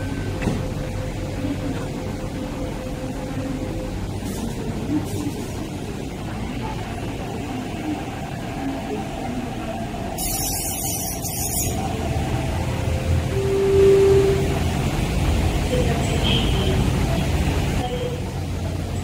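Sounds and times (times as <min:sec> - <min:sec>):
electric train rumbling: 0:00.0 - 0:19.0
short steady tone: 0:13.3 - 0:14.8.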